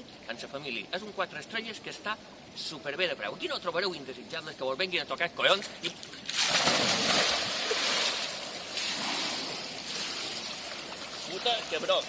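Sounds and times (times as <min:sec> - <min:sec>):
water churning and splashing: 0:06.2 - 0:12.0
loud splash into pool: 0:06.3 - 0:10.0.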